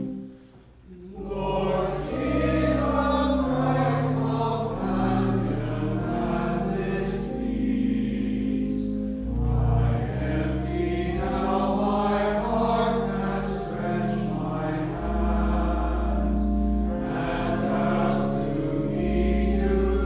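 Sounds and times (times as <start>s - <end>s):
church organ chord: 0.0s - 20.0s
voices singing a hymn with organ: 0.0s - 20.0s.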